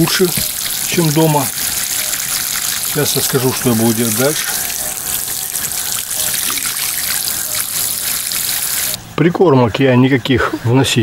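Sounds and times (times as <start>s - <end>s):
water sprinkling onto soil: 0.0s - 9.0s.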